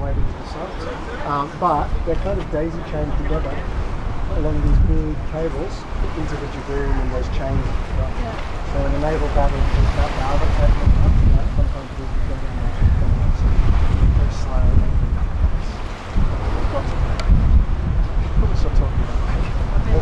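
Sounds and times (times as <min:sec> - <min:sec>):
faint voices: 0:00.0 - 0:20.0
water washing along a hull: 0:00.0 - 0:20.0
wind buffeting microphone: 0:00.0 - 0:20.0.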